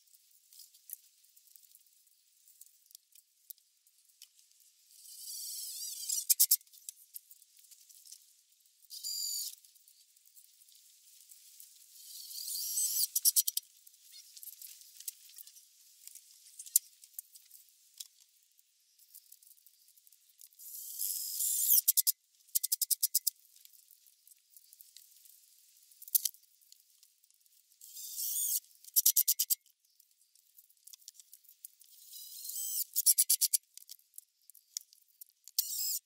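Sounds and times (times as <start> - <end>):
small rattles and clicks: 0.0 - 36.0.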